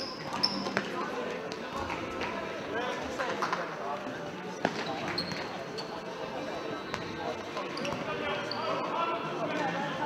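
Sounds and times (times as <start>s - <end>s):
sneakers squeaking on court: 0.0s - 0.9s, 4.6s - 5.9s
people shouting and talking: 0.0s - 10.0s.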